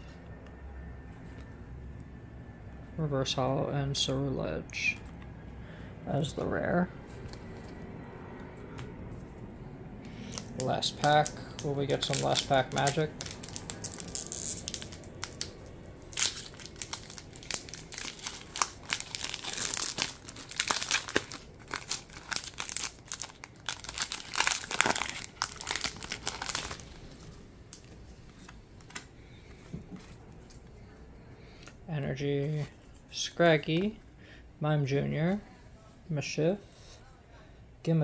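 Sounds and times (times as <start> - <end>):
foil wrapper crinkling and tearing: 10.1 - 27.9.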